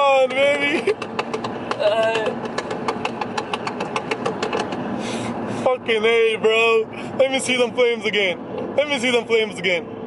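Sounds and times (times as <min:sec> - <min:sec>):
exhaust crackling and popping: 0:00.0 - 0:06.2
engine drone: 0:00.0 - 0:10.0.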